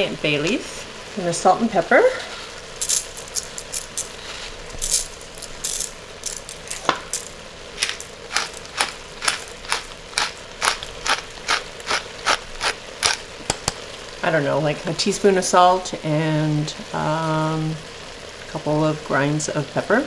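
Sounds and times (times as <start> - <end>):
salt sprinkling onto potatoes: 2.1 - 13.8
pepper mill grinding: 2.8 - 13.8.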